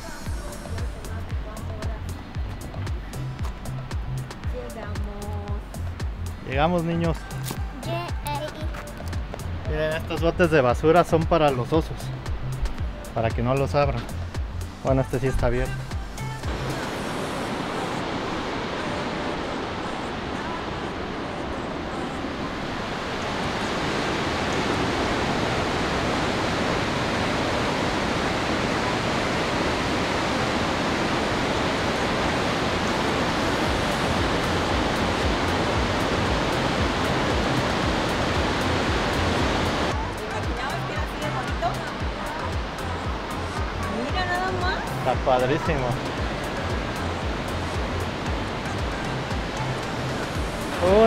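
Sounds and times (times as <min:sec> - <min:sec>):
background music with beat: 0:00.0 - 0:17.4, 0:33.7 - 0:51.0
waterfall roaring: 0:16.4 - 0:51.0.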